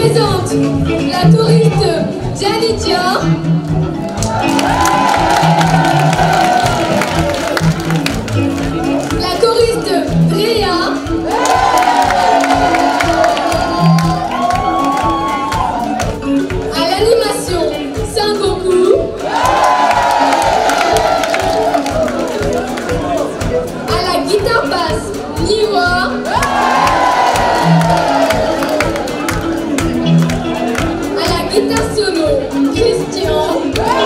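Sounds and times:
drum kit beat: 0:00.0 - 0:34.0
live band playing: 0:00.0 - 0:34.0
audience cheering: 0:04.2 - 0:09.0, 0:11.2 - 0:16.3, 0:19.2 - 0:23.3, 0:26.3 - 0:29.5.

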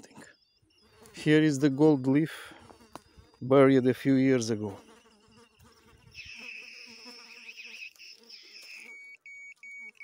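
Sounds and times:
high electronic beeps: 0:04.9 - 0:10.0.

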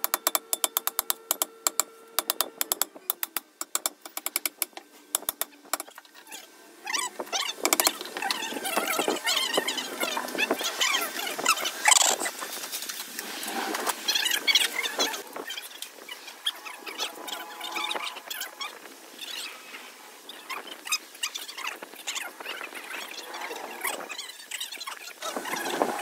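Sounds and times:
socket wrench clicking and clinking: 0:00.0 - 0:05.9, 0:07.6 - 0:08.0.

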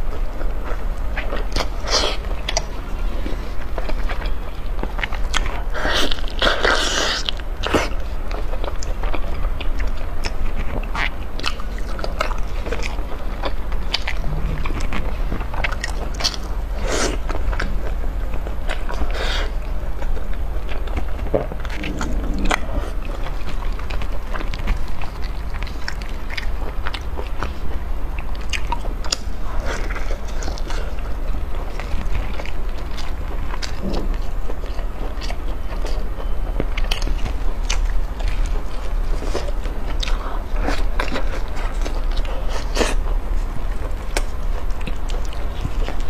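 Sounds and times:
biting and chewing: 0:00.0 - 0:46.0.

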